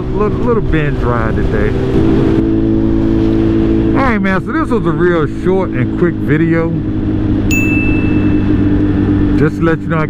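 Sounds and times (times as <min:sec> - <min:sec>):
motorcycle engine cruising: 0:00.0 - 0:10.0
bright ding: 0:07.5 - 0:08.6.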